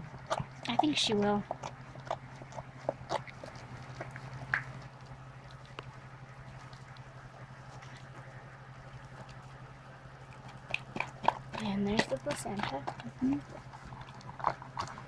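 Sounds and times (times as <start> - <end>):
steady low hum: 0.0 - 15.0
dog licking and smacking: 1.5 - 15.0.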